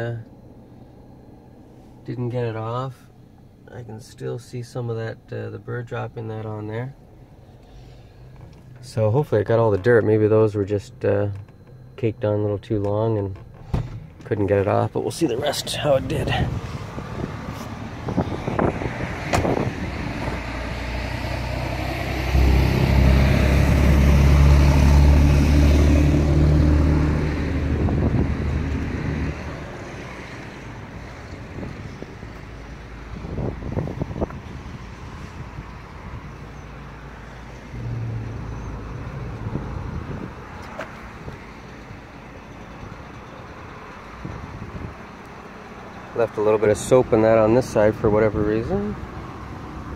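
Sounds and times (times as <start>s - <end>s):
traffic background: 0.0s - 49.9s
road vehicle passing by: 15.3s - 49.9s.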